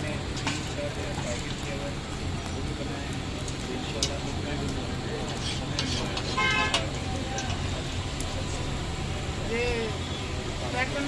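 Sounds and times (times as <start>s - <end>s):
street noise: 0.0s - 11.0s
vehicle horn toot: 6.3s - 6.8s.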